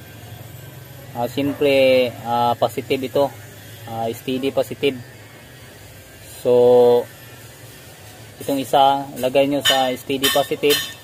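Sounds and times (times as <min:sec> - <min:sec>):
man speaking: 0:01.1 - 0:05.1, 0:06.4 - 0:07.1.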